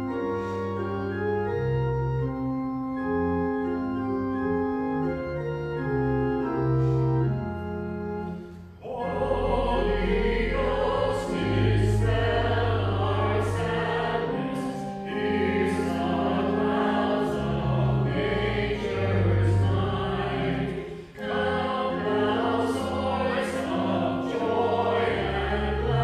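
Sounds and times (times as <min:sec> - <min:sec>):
organ accompaniment: 0:00.0 - 0:26.0
voices singing a hymn: 0:08.8 - 0:26.0.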